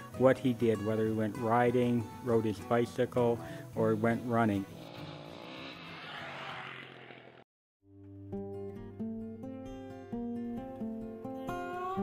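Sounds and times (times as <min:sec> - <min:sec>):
off-road motorcycle engine running: 0:03.8 - 0:07.4.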